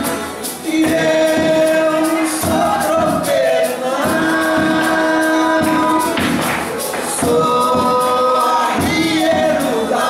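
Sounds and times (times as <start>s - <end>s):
hand drum beats: 0.0s - 10.0s.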